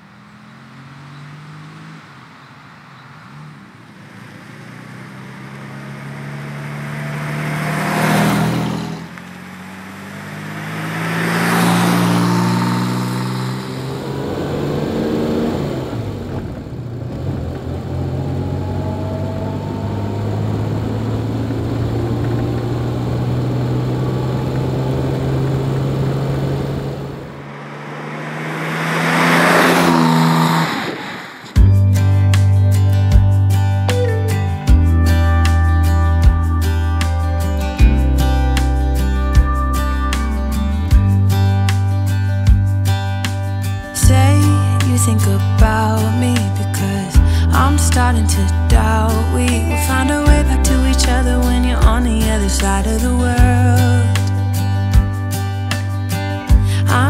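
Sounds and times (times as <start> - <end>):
car engine driving past: 0.0 - 31.7.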